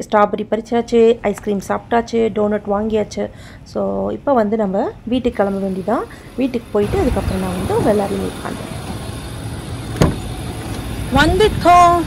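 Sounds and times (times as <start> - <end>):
steady low rumble: 5.0 - 12.0
car door latch click: 9.9 - 10.2.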